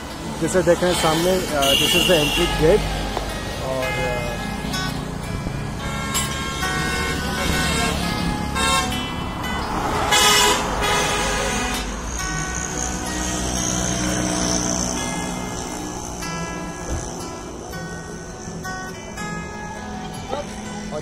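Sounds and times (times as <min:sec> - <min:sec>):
road traffic: 0:00.0 - 0:21.0
vehicle horn honking: 0:00.7 - 0:02.8, 0:05.8 - 0:09.2, 0:10.0 - 0:12.0.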